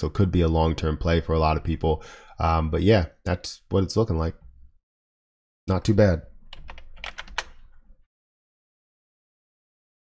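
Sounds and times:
computer keyboard keystrokes: 6.5 - 7.7.

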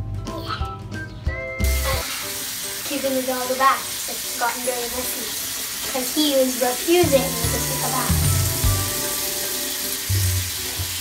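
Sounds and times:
background music: 0.0 - 11.0
sink tap running: 1.6 - 11.0.

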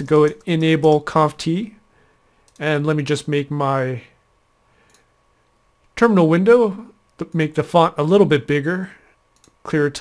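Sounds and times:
faint computer mouse click: 4.8 - 5.1, 9.4 - 9.6.

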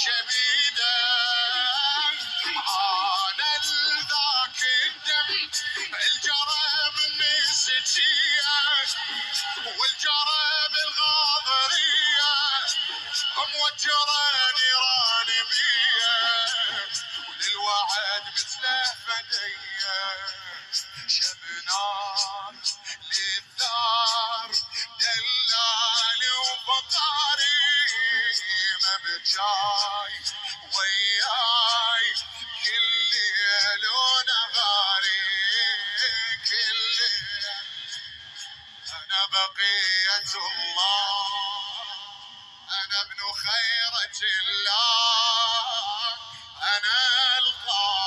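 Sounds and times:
person chanting with vibrato: 0.0 - 48.0.

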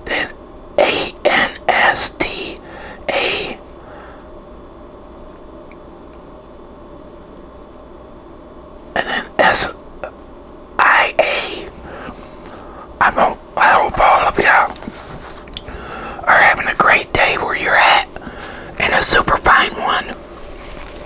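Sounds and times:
man whispering: 0.0 - 3.6, 9.0 - 10.2, 10.8 - 11.8, 13.0 - 14.8, 16.2 - 18.2, 18.8 - 20.2.

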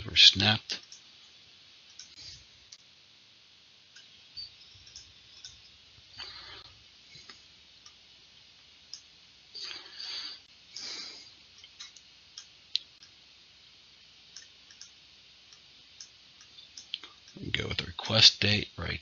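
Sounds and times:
computer mouse clicks: 0.8 - 1.1, 1.9 - 2.8, 4.8 - 5.6, 11.6 - 13.2, 14.3 - 17.4.

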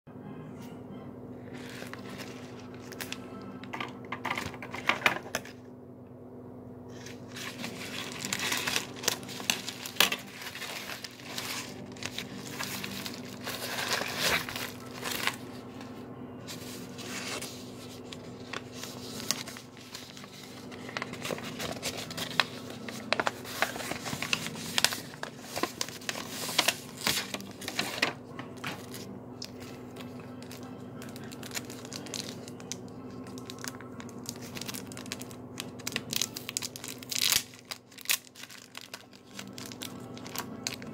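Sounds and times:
steady low hum: 0.1 - 40.9
paper tearing and crinkling: 6.9 - 15.9, 16.5 - 40.9.

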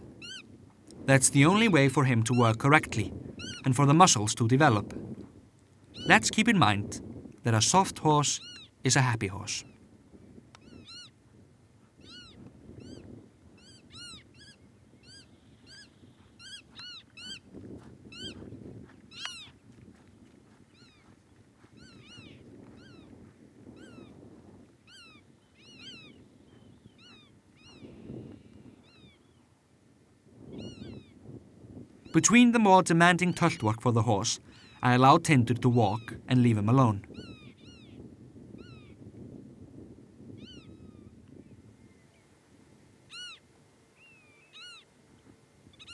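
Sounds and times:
bird mewing calls: 0.0 - 0.6, 1.5 - 4.8, 5.9 - 6.8, 8.2 - 9.8, 10.6 - 11.2, 12.0 - 18.5, 19.1 - 19.6, 20.7 - 23.2, 23.8 - 24.2, 24.8 - 29.4, 30.6 - 31.2, 32.0 - 39.0, 40.4 - 41.2, 43.1 - 44.9.

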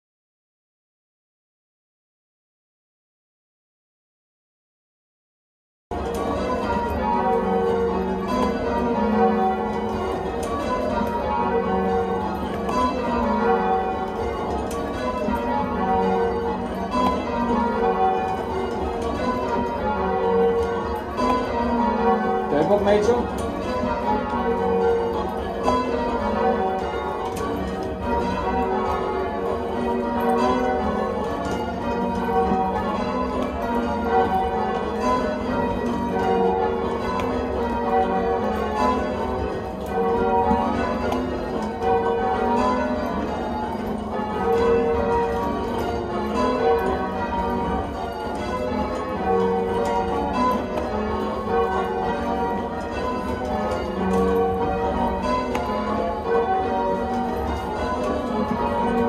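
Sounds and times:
church bells ringing: 5.9 - 59.0.

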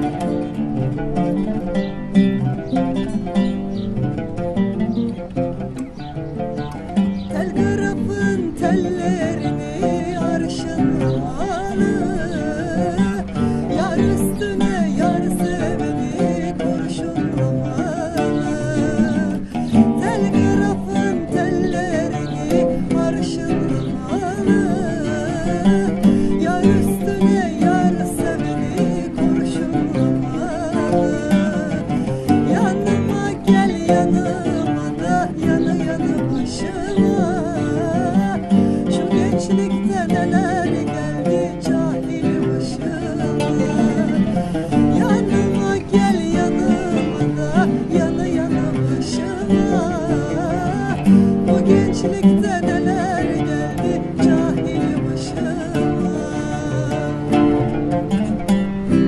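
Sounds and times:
acoustic guitar: 0.0 - 59.0
plucked oud: 0.0 - 59.0
woman singing: 7.3 - 57.7.

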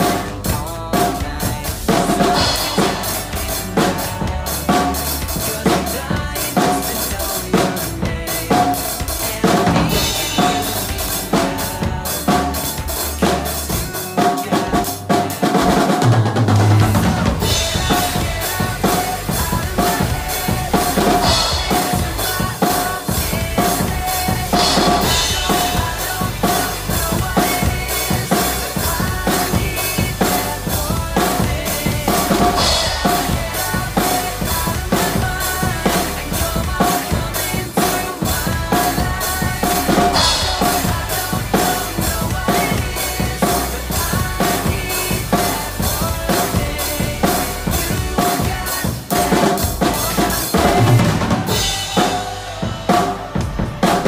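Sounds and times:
drum kit playing a beat: 0.0 - 54.0
pop song backing track: 0.0 - 54.0.

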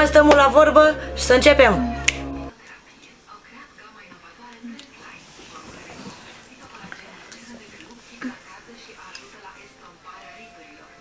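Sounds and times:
low steady hum: 0.0 - 2.6
finger snap: 2.0 - 2.4.

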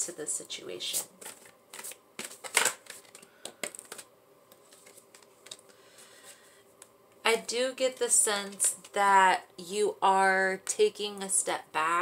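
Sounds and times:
cards rustling: 1.0 - 6.4.

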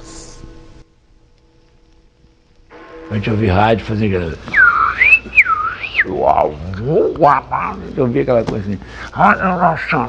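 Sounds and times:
man imitating radio tuning: 4.5 - 8.1.

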